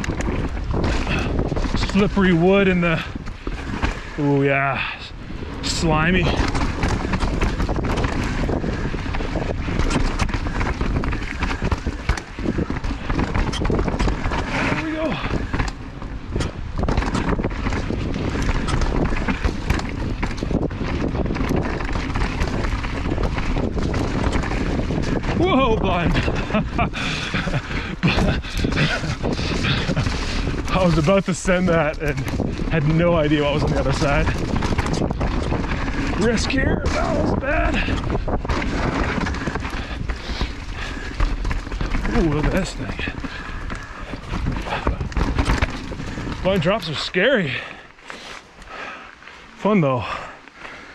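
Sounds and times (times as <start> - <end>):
wind on microphone: 0.0 - 46.9
bike clattering over roots: 0.0 - 50.9
bike tyre noise on dirt: 0.0 - 50.9.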